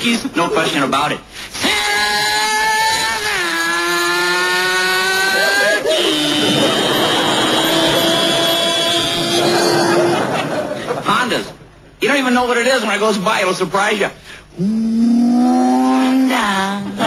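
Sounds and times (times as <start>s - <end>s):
man imitating motorcycle engine: 14.6s - 16.4s.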